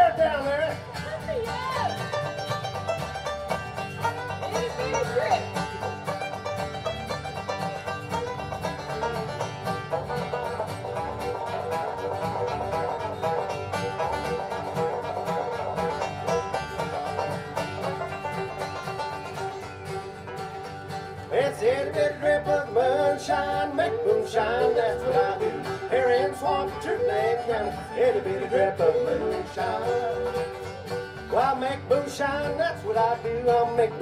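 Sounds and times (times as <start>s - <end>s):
acoustic guitar: 0.0s - 34.0s
banjo picking fast rolls: 0.0s - 34.0s
fiddle: 0.0s - 34.0s
upright bass: 0.0s - 34.0s.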